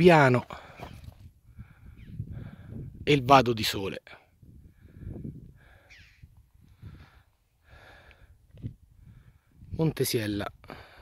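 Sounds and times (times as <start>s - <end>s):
wind rumble on microphone: 0.6s - 3.3s, 4.3s - 10.1s.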